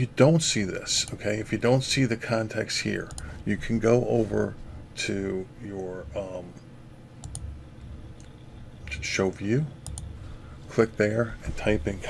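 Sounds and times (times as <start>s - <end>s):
faint low hum: 0.0s - 12.0s
mouse button clicking: 7.2s - 7.5s.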